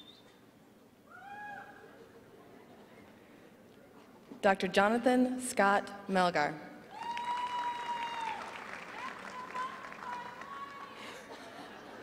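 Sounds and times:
thin high whistle-like tone: 0:00.0 - 0:00.4.

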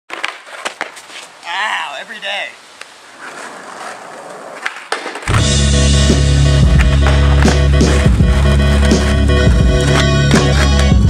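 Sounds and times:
skateboard clacking: 0:00.1 - 0:01.3, 0:02.8 - 0:11.0
skateboard wheels rolling on pavement: 0:00.1 - 0:11.0
loud music with heavy bass: 0:05.3 - 0:11.0.

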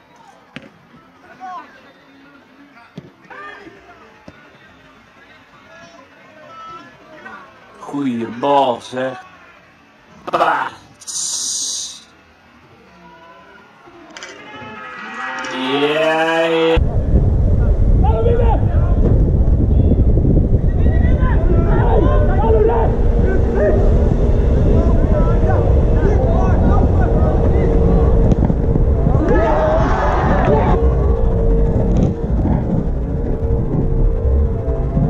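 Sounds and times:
voices: 0:00.0 - 0:16.8, 0:17.5 - 0:35.0
people shouting: 0:12.9 - 0:15.7, 0:20.8 - 0:32.2
steady tones: 0:14.4 - 0:35.0
loud dense rumble: 0:16.8 - 0:35.0.

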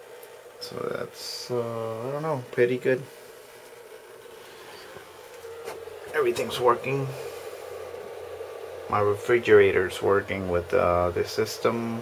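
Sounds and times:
low hum: 0:00.2 - 0:12.0.

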